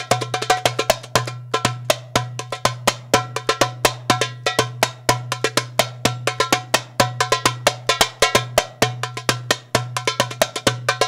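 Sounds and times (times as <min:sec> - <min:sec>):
goblet drum played by hand: 0:00.0 - 0:11.0.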